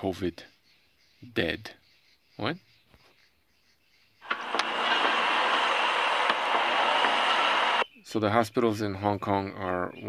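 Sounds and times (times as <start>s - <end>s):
steady rushing ambient noise: 4.2s - 7.8s.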